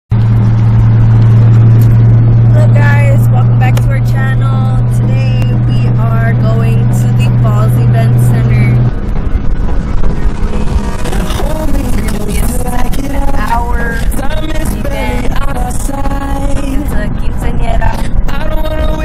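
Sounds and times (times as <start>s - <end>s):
car engine drone: 0.1s - 19.0s.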